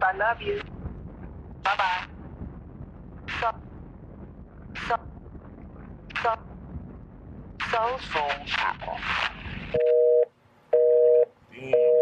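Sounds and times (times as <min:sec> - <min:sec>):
telephone busy signal beeps: 0:09.8 - 0:12.0.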